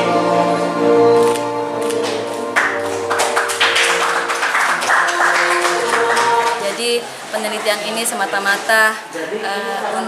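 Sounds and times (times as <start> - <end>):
background music: 0.0 - 7.3
hand clapping: 1.9 - 6.8.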